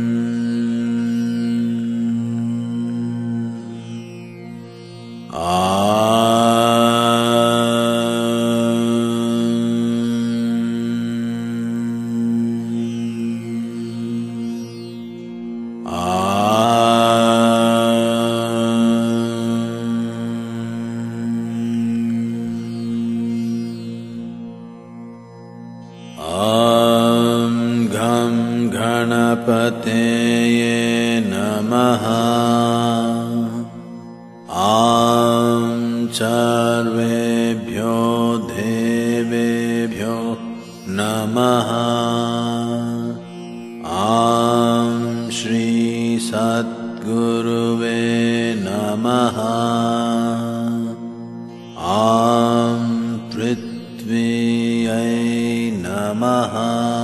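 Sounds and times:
man chanting: 5.3s - 14.9s, 15.9s - 23.9s, 26.2s - 33.9s, 34.5s - 51.2s, 51.8s - 57.0s.

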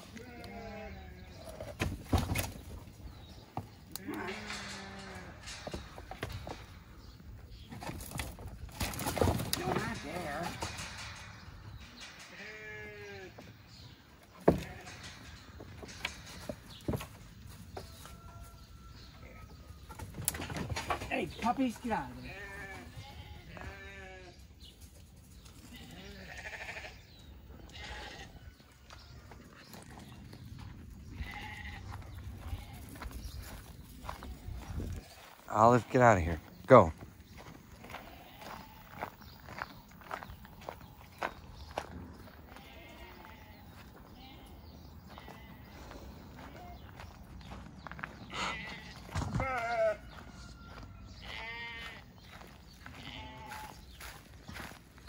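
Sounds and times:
sheep bleating: 0.0s - 1.4s, 22.2s - 24.4s, 25.7s - 27.0s, 27.6s - 28.4s, 31.2s - 32.8s, 42.5s - 44.5s, 45.1s - 45.9s, 48.3s - 50.2s, 51.2s - 52.1s, 52.8s - 53.8s.

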